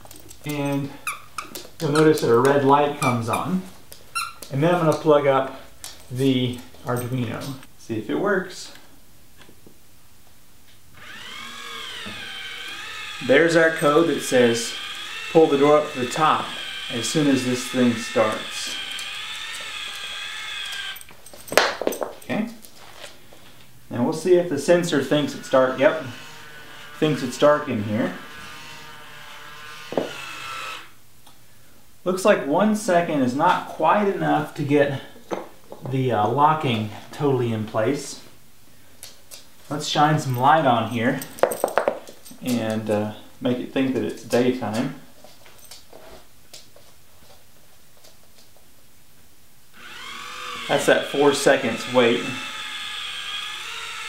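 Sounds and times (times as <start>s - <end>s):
electric gear motor whining: 11.0s - 21.1s, 24.9s - 31.0s, 49.8s - 54.0s.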